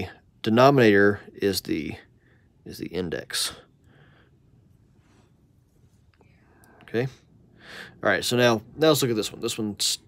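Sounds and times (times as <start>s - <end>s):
soft breath: 3.5s - 8.0s.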